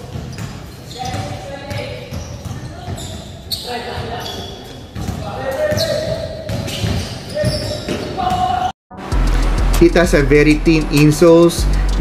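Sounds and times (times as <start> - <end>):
basketball bouncing: 0.0 - 3.3, 4.9 - 8.7.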